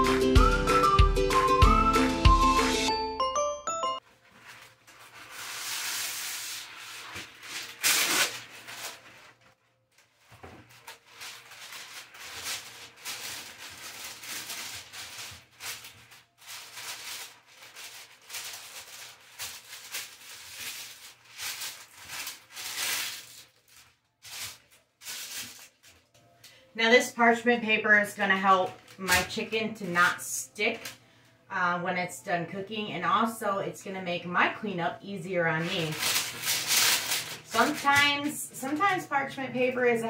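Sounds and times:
parchment paper crinkling: 4.0s - 26.7s, 35.5s - 39.1s.

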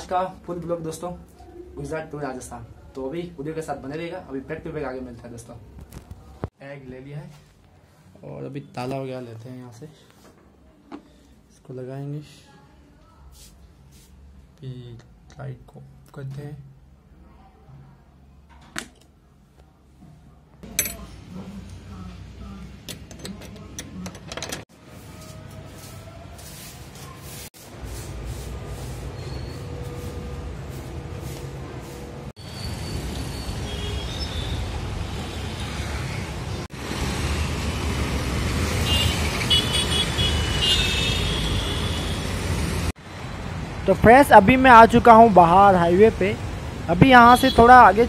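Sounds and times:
motorcycles and cars passing: 33.7s - 48.0s
high-pitched vehicle horn toots: 38.8s - 42.4s.

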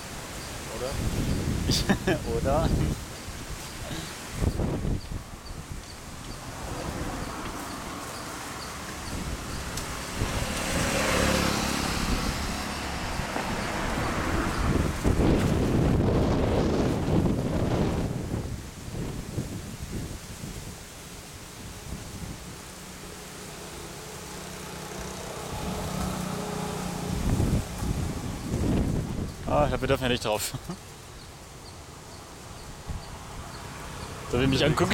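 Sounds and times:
road traffic passing: 0.0s - 34.9s.

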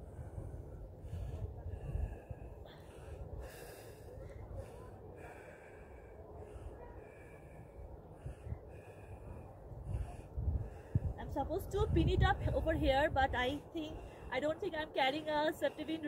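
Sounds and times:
person breathing: 0.0s - 11.2s, 13.8s - 14.4s
wind rumbling on microphone: 0.0s - 14.7s.

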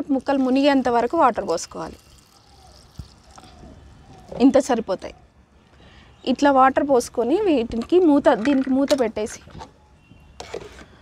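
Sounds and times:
water trickling into bowl: 0.0s - 4.0s
woman speaking: 6.3s - 9.5s.

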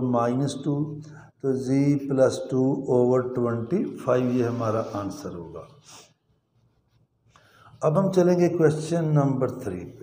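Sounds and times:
man speaking: 0.0s - 6.0s, 7.8s - 10.0s.

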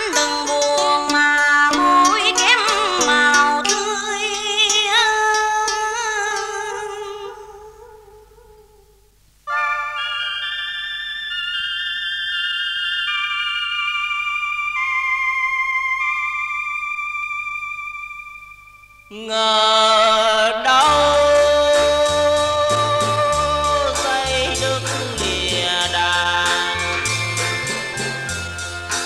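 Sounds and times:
long held instrumental notes: 0.0s - 8.6s, 9.5s - 29.0s
wavering held note: 9.5s - 19.2s.

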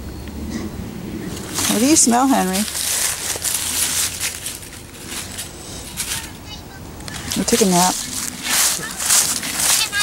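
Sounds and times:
dry leaves rustling and crunching: 1.2s - 10.0s.

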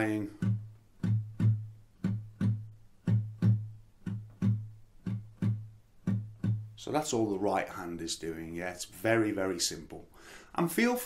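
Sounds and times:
acoustic guitar bass notes picked: 0.0s - 7.6s.

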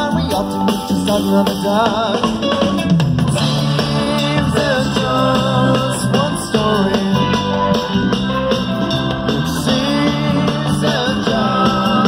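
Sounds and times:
electric guitar: 0.0s - 12.0s
rock band playing live: 0.0s - 12.0s.

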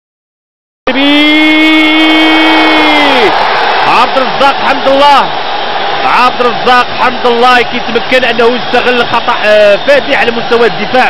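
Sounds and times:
commentator's long goal shout: 0.9s - 11.0s
stadium crowd noise: 0.9s - 11.0s.

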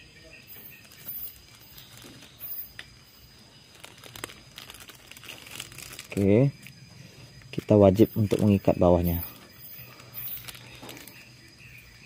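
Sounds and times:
plastic bag crinkling: 0.7s - 6.7s, 7.5s - 11.4s.

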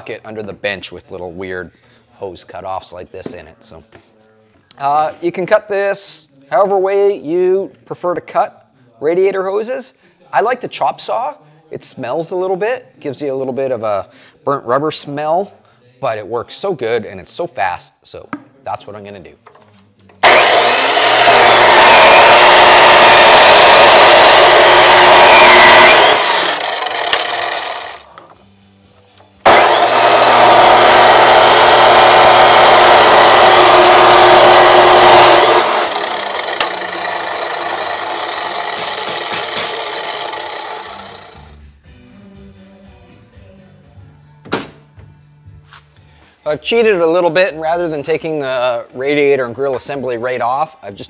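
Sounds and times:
chop saw cutting rubber hose: 20.2s - 28.1s, 29.4s - 41.5s
motor winding down: 20.2s - 28.2s, 29.4s - 41.5s.

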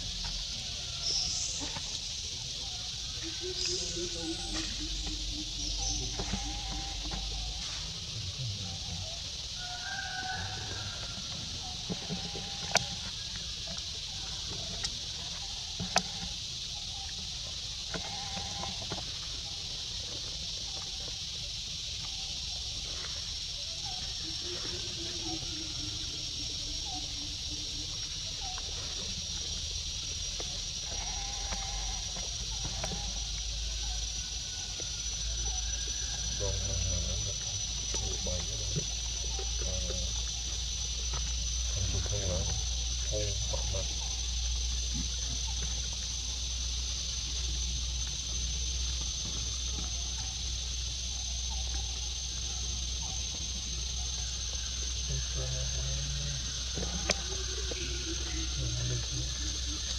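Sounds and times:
high-pitched insect drone: 0.0s - 59.9s
faint short animal calls: 3.2s - 7.6s, 17.9s - 18.8s, 30.8s - 33.2s.

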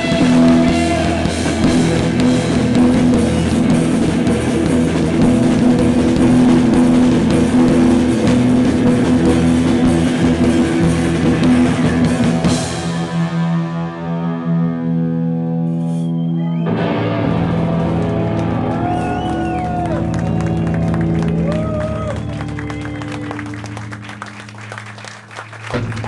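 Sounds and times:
distorted electric guitar chords: 0.0s - 26.0s
drums: 0.0s - 26.0s.

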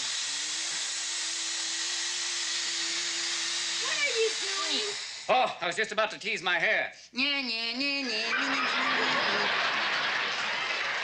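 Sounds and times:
aerosol hairspray hissing: 0.0s - 5.3s
steady held tone: 0.0s - 5.5s.

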